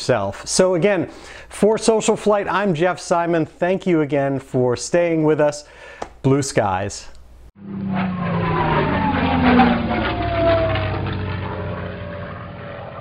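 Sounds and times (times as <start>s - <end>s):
propeller airplane flying past: 7.6s - 13.0s.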